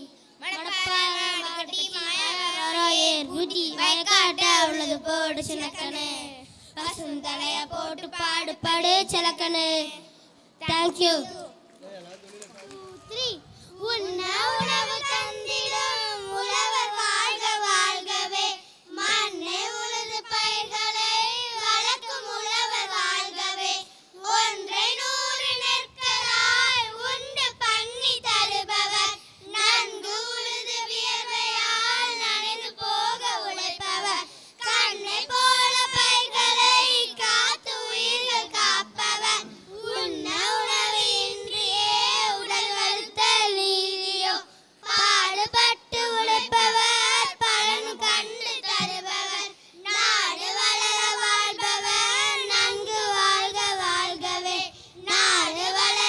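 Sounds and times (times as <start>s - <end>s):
children singing into microphones: 0.0s - 9.4s, 13.7s - 56.0s.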